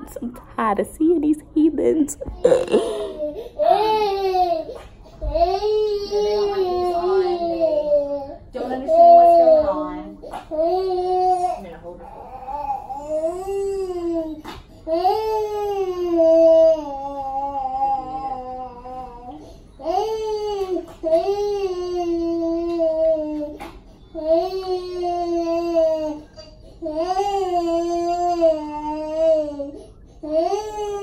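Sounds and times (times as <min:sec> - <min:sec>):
toddler crying in wails: 0:02.4 - 0:11.6, 0:24.2 - 0:31.0.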